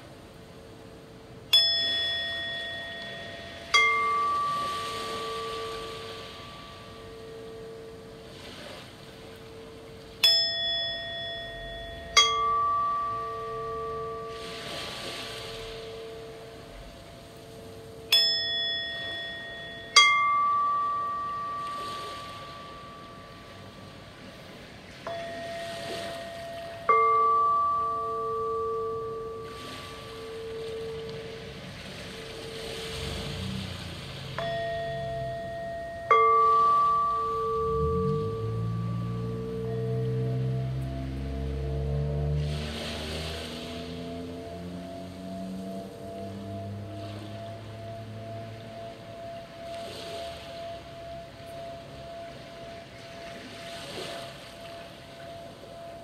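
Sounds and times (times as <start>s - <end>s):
pulsing hum: 0.0s - 56.0s
singing bowls ringing: 0.0s - 56.0s
mallet striking bowl: 1.5s - 8.3s, 9.3s - 23.8s, 25.0s - 33.5s, 34.4s - 56.0s.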